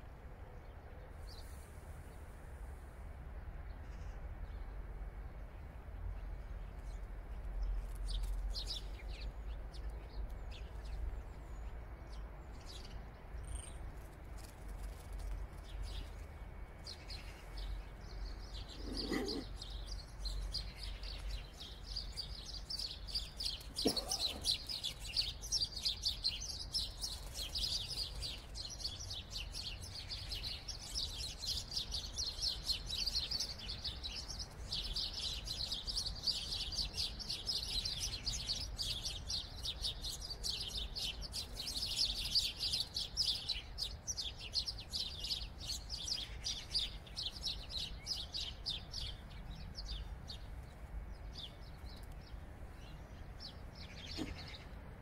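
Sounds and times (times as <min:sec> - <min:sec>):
small birds chirping: 0:03.6 - 0:55.0.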